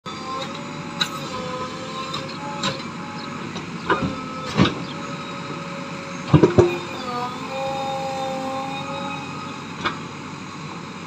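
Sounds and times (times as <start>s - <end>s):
diesel engine running: 0.0s - 11.0s
thin whining tone: 0.1s - 11.0s.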